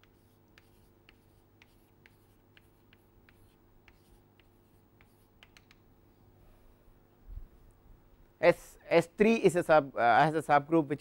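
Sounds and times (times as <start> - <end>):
chalk tapping and scratching: 0.0 - 5.8.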